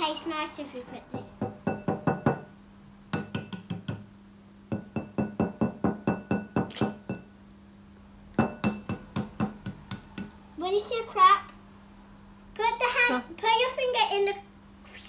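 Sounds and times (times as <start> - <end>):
eggs tapped on glass bowls: 1.1 - 2.5, 3.1 - 4.1, 4.7 - 7.3, 8.3 - 10.4.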